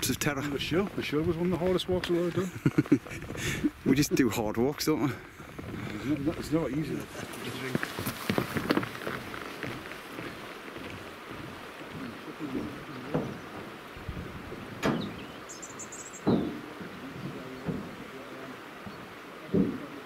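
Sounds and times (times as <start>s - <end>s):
footsteps on wooden bridge: 0.0s - 3.7s, 5.1s - 15.5s, 16.2s - 20.0s
outdoor hiss: 0.0s - 20.0s
high chirping: 14.8s - 18.0s.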